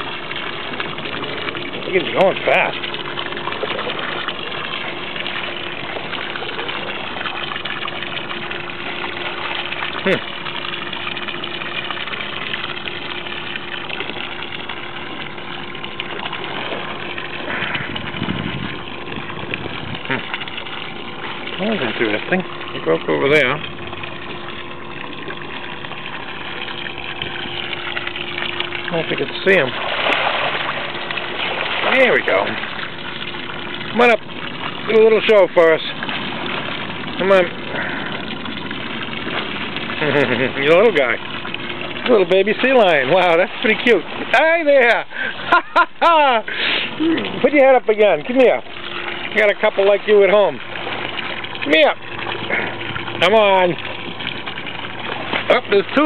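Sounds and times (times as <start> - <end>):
boat motor idling: 0.0 - 56.0
rush of water: 0.0 - 56.0
water sloshing against hull: 0.0 - 56.0
hiss of water and air: 46.4 - 47.3.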